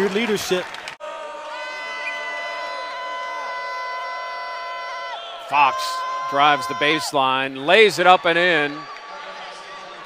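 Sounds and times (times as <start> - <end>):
faint crowd noise: 0.0 - 10.0.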